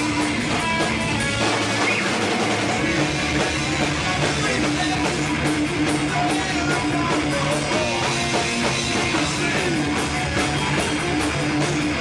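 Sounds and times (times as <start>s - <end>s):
rock music with guitar and drums: 0.0s - 12.0s.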